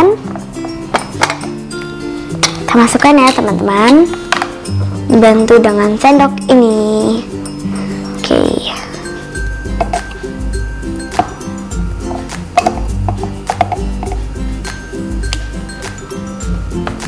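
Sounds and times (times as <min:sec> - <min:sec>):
background music with bass line: 0:00.0 - 0:17.0
plastic spoon clinking on bowl: 0:09.7 - 0:10.2, 0:12.0 - 0:14.2.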